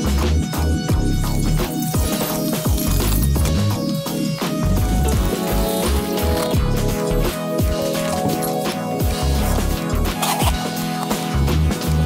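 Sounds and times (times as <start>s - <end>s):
electronic music with heavy bass: 0.0s - 12.0s.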